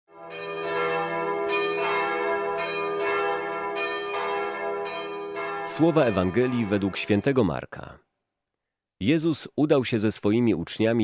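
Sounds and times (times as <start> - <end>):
church bells ringing: 0.1 - 7.6.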